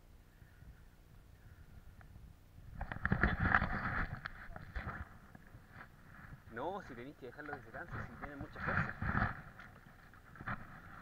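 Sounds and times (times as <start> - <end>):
camera handling rustling and knocks: 2.7 - 6.5, 7.4 - 11.0.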